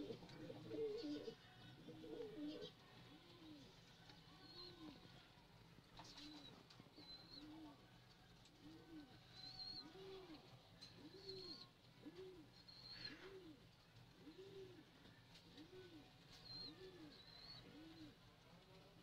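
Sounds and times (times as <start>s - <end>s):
pigeon cooing softly: 0.0s - 5.3s, 6.0s - 19.0s.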